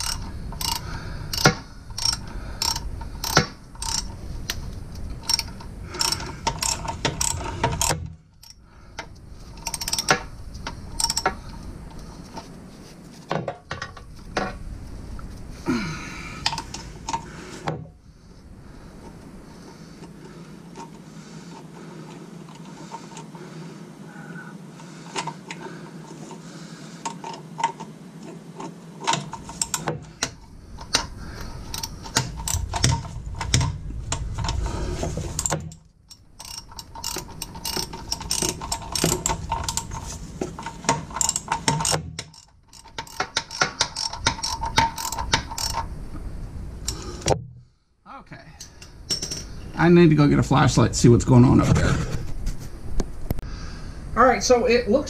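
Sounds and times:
socket ratchet clicking: 0.0s - 11.4s, 35.4s - 45.9s.

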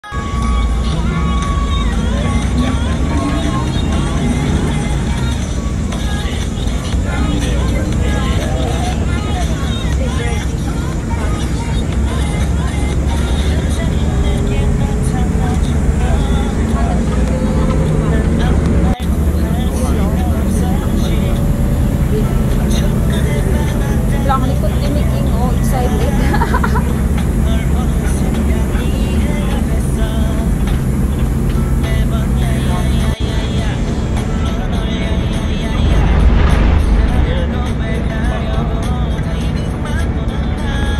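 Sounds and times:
bus engine rumble: 0.0s - 40.9s
indistinct voices: 0.0s - 40.9s
music: 0.0s - 40.9s.

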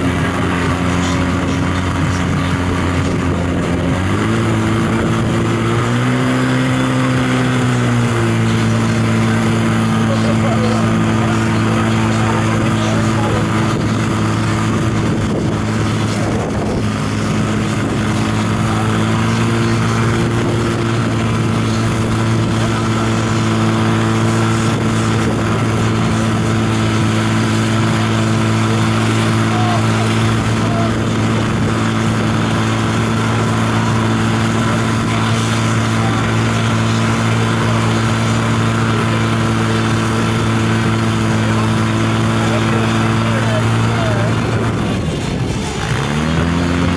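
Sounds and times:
pump engine droning: 0.0s - 46.9s.

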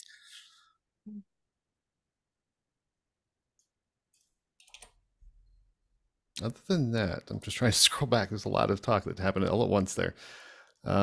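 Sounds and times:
computer mouse clicks: 3.6s - 5.0s.

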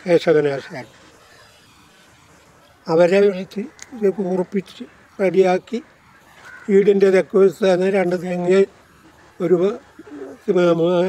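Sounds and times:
man speaking: 0.0s - 1.0s, 2.8s - 6.0s, 6.7s - 11.0s
dove cooing: 0.0s - 11.0s.

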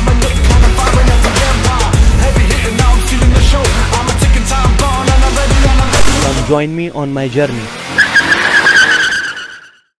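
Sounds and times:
car tyres screeching: 5.0s - 10.0s.

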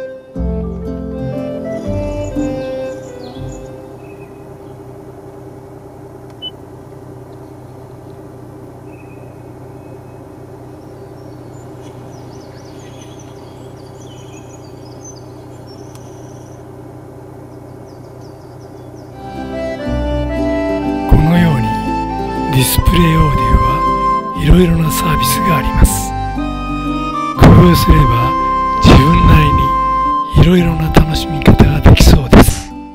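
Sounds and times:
steady low hum: 0.0s - 32.9s
faint bird-like chirps: 8.8s - 16.7s.

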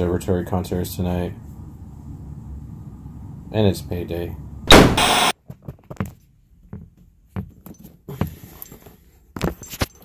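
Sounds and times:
tv static noise burst: 4.7s - 5.3s.

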